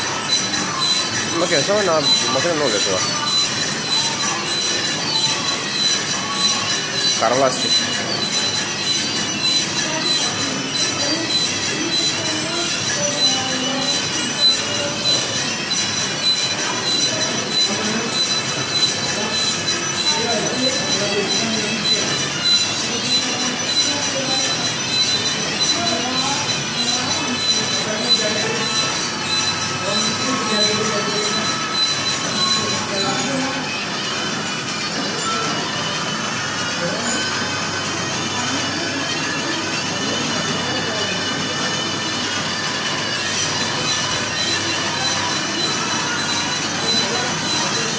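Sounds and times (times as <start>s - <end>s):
faint voices: 0.0s - 47.9s
motor mechanisms squealing: 0.0s - 47.9s.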